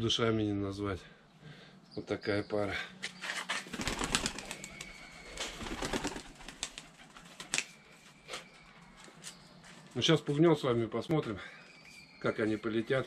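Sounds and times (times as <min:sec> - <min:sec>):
pigeon wings flapping: 0:03.6 - 0:07.8.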